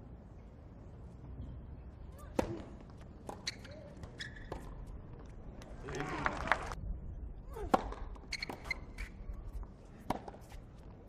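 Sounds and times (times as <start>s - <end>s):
shoe squeaks: 3.3s - 4.8s, 8.2s - 9.4s.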